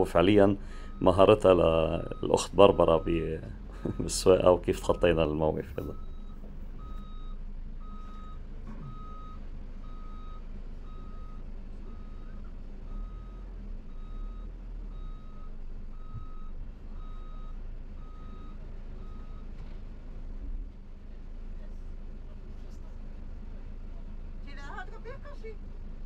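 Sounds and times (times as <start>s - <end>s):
engine humming: 0.0s - 26.0s
reversing alarm beeping: 0.7s - 12.3s.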